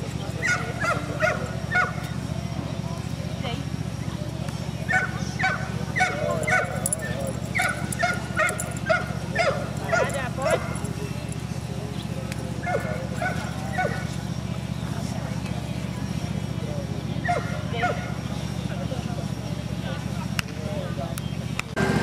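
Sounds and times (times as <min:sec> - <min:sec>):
dog barking: 0:00.4 - 0:02.0, 0:04.9 - 0:10.9, 0:12.6 - 0:14.1, 0:17.2 - 0:18.2.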